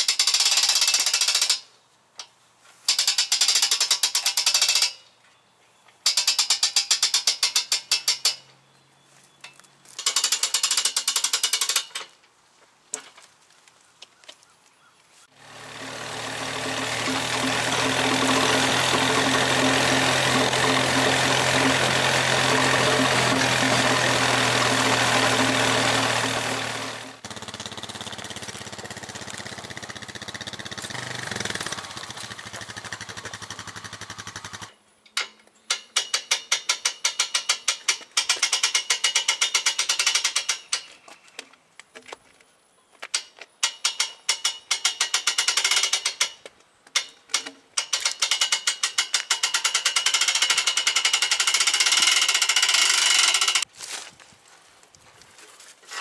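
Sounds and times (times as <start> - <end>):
ratchet clicks: 0.0 - 1.7, 2.9 - 5.0, 6.0 - 8.5, 10.0 - 12.1, 34.1 - 40.9, 43.2 - 53.7
atv engine running: 15.3 - 34.7.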